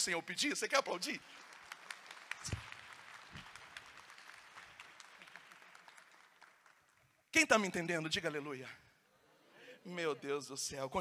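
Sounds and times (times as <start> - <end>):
audience applauding: 0.4 - 7.2.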